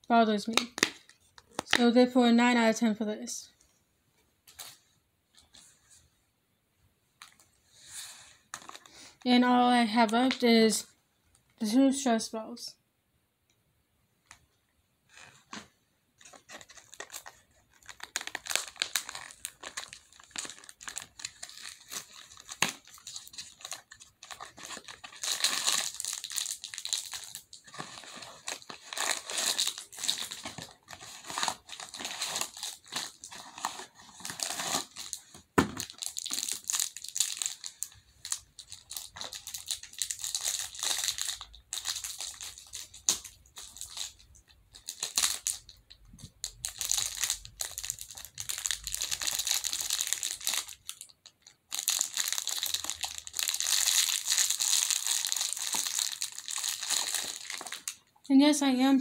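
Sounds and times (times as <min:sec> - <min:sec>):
packaging crinkling and tearing: 0:08.5 - 0:09.0, 0:16.2 - 0:58.1.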